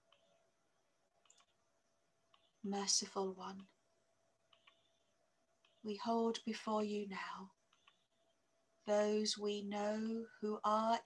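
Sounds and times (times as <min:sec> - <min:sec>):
faint steady hum: 0:00.0 - 0:11.0
faint clicks: 0:01.1 - 0:01.6, 0:03.6 - 0:03.8, 0:04.4 - 0:05.0, 0:07.6 - 0:08.2
person speaking: 0:02.6 - 0:03.8, 0:05.8 - 0:07.6.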